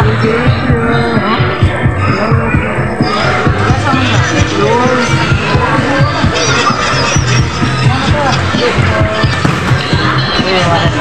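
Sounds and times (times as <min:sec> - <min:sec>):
music with thumping bass beat: 0:00.0 - 0:11.0.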